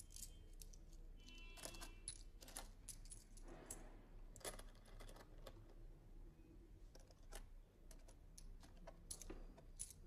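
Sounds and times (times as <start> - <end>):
small clicks and clinks: 0.0 - 5.6, 6.9 - 10.0.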